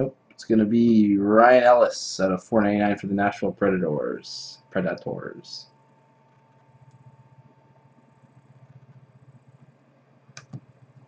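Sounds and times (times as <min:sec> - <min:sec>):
faint thin whine: 0:00.0 - 0:11.0.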